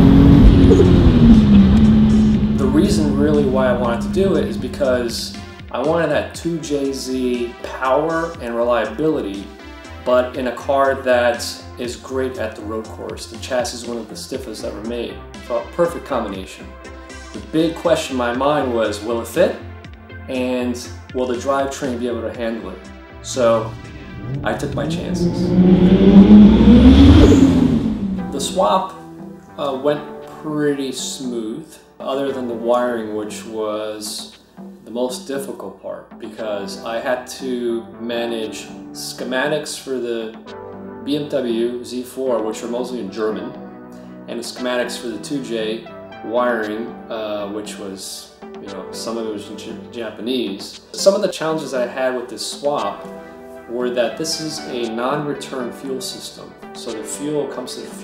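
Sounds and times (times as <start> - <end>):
car engine running hard: 0.0 - 5.5, 23.2 - 28.6.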